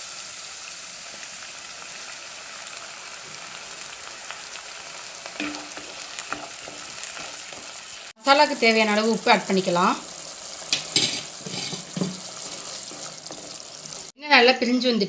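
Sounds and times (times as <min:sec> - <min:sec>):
onions sizzling in hot oil: 0:00.0 - 0:14.2.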